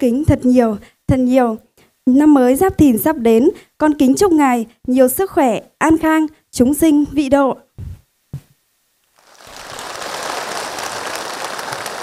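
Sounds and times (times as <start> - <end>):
large crowd applauding: 9.2 - 12.0.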